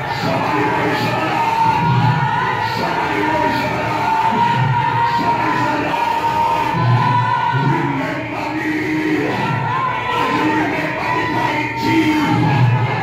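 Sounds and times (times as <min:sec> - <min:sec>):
congregation singing and crying out: 0:00.0 - 0:13.0.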